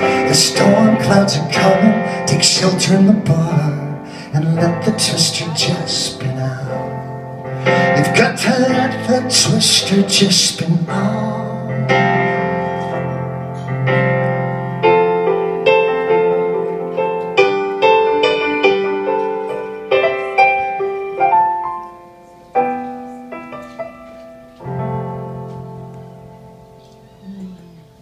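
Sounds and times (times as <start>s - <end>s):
solo piano chords and melody: 0.0s - 28.0s.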